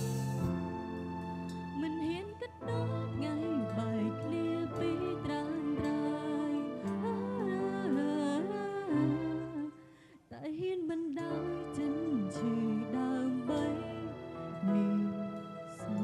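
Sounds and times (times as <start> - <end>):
backing band chords: 0.0 - 1.6
instrumental accompaniment: 0.0 - 9.8
woman singing into microphone: 1.8 - 16.0.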